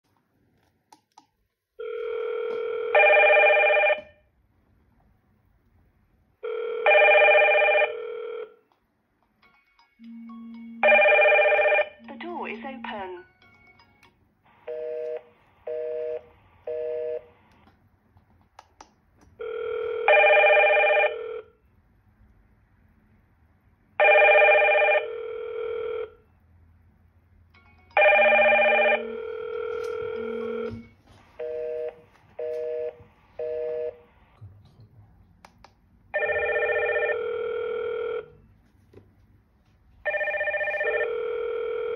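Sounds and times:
video intercom ringing: 28.0s - 34.1s.

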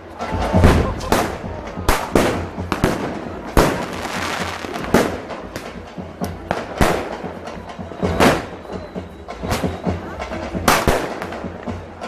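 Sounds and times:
fireworks bursting with bangs: 0.2s - 12.0s
small firework pops: 0.6s - 11.9s.

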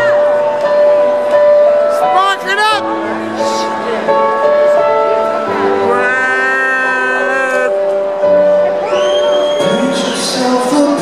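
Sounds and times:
piano chords: 0.0s - 11.0s
voice holding long note: 5.8s - 7.8s.

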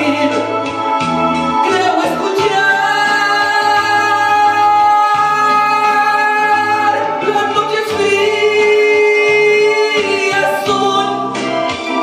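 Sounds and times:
man singing a ballad: 0.0s - 0.7s, 1.6s - 12.0s
karaoke backing track: 0.0s - 12.0s.

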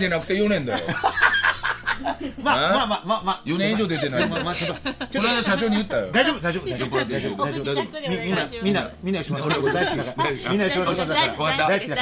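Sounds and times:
people laughing: 0.4s - 12.0s.

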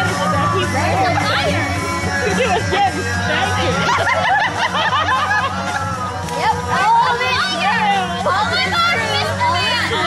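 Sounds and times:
chatter: 0.0s - 10.0s
people giggling: 0.2s - 6.0s.

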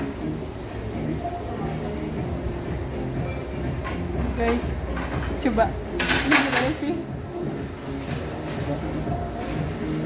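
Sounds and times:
restaurant background noise: 0.0s - 10.0s.

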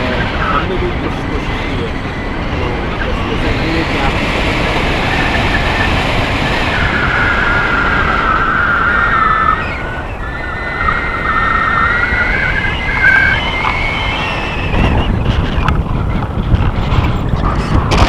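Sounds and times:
wind buffeting microphone: 0.0s - 18.0s
whistle-like tone: 7.0s - 15.7s.

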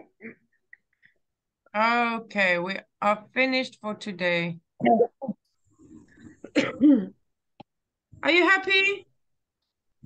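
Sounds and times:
person coughing: 6.4s - 7.2s
throat clearing: 6.4s - 7.2s.

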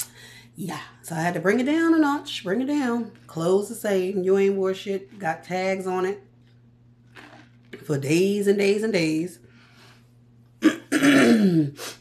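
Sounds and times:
woman clearing her throat: 10.6s - 11.8s.

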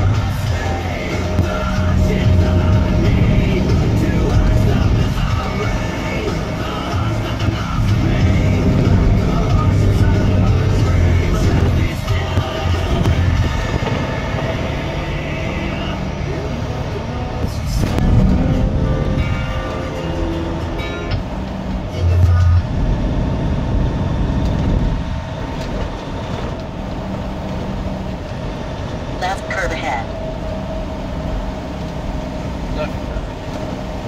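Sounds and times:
low thumps: 0.0s - 29.2s
truck engine and road rumble: 0.0s - 34.0s.

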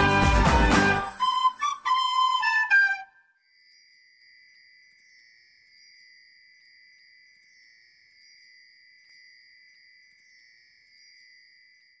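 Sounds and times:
high ringing chime with tinkles: 3.4s - 12.0s.

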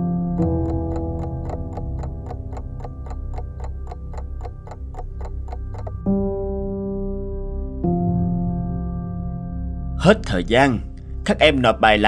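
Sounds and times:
clock ticking quickly: 0.4s - 6.1s.

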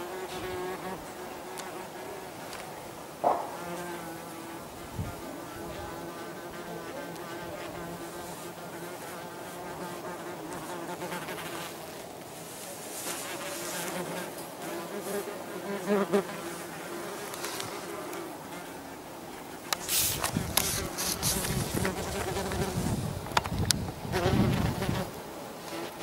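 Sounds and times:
wasps buzzing in flight: 0.0s - 11.9s, 13.0s - 26.0s.

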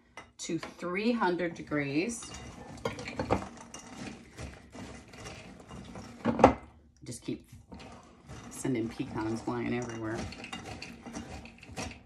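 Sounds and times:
spatula scraping bowl: 0.5s - 12.0s
nuts rattling in a bowl: 7.7s - 12.0s.

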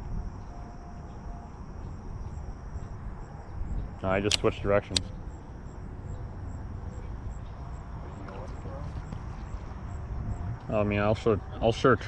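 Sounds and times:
wind rumble on microphone: 0.0s - 12.0s
faint voice: 8.0s - 9.1s.

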